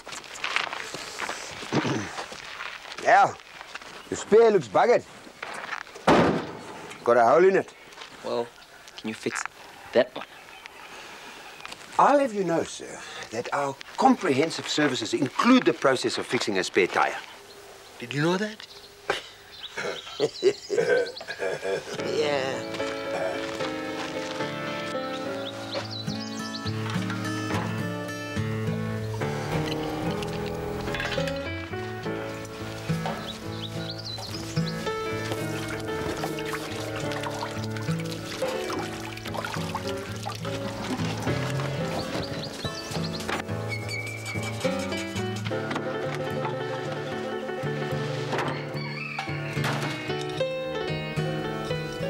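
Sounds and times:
man laughing: 19.1 - 22.1, 23.1 - 23.6
background music sustained notes: 22.0 - 52.0.

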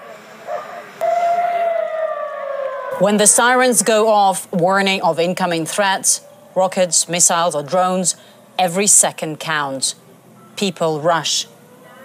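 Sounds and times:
air-raid siren wailing: 0.0 - 4.0.

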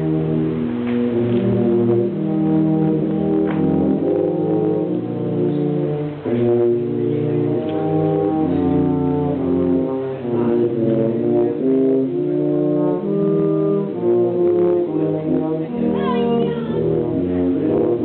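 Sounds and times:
tuba and euphonium quartet: 0.0 - 18.0.

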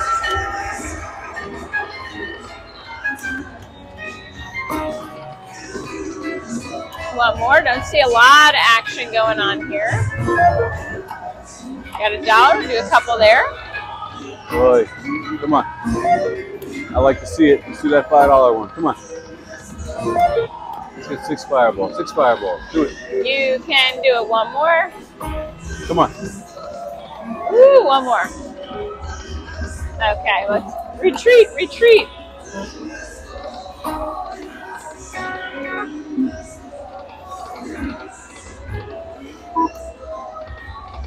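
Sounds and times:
slot machine plucked-string music: 6.8 - 11.2.

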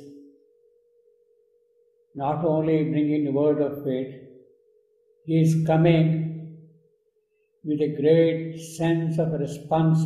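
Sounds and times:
faint steady hum: 0.0 - 10.0
man speaking: 2.2 - 4.2, 5.3 - 6.2, 7.7 - 10.0.

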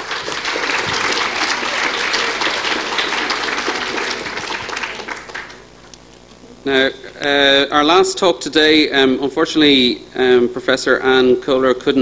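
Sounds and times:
audience applauding: 0.0 - 5.9.

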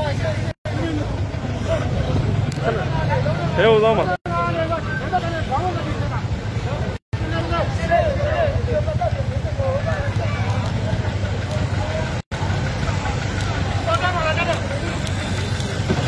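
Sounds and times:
people talking: 0.0 - 16.0
vehicle engine idling: 0.0 - 16.0.

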